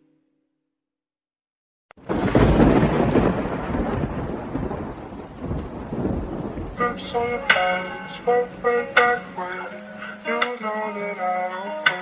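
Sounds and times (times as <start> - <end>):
wind buffeting microphone: 2.1 - 8.8.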